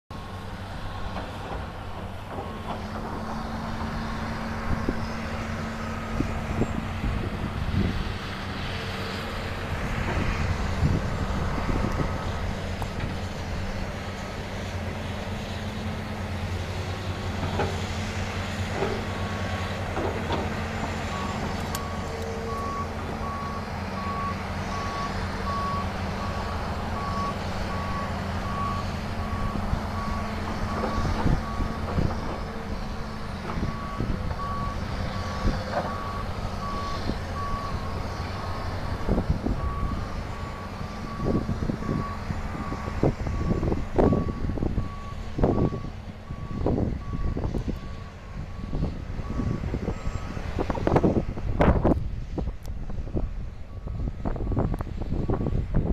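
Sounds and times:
diesel engines running: 0:00.1 - 0:55.9.

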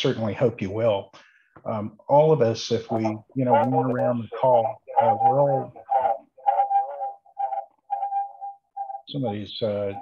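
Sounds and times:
steady whistle-like tone: 0:04.4 - 0:10.0.

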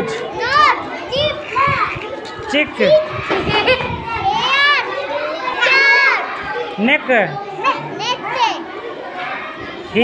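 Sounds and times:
children calling out words: 0:00.0 - 0:10.0
children's voices in background: 0:00.0 - 0:10.0.

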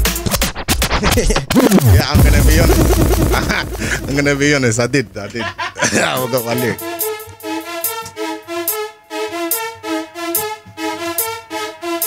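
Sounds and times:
dj scratching rewind of music: 0:00.0 - 0:05.2.

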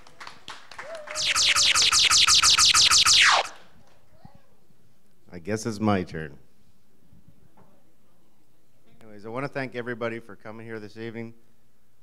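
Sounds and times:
electronic falling sweeps: 0:01.2 - 0:03.6.

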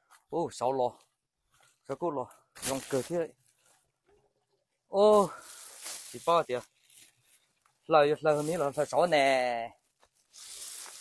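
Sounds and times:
rustle of leaves and undergrowth: 0:02.5 - 0:04.1, 0:04.9 - 0:11.0.

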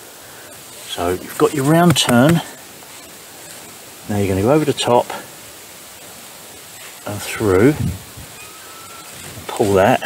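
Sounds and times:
steady background hiss: 0:00.0 - 0:10.0
person giving spoken instructions: 0:00.9 - 0:02.5.

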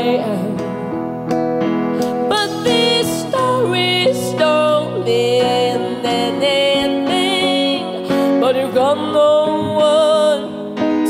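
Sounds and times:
electric guitar: 0:00.0 - 0:11.0
woman singing into a microphone: 0:00.0 - 0:11.0.

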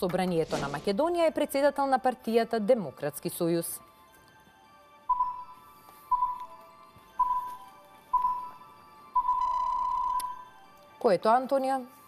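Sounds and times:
countdown timer beeps: 0:05.1 - 0:10.6.

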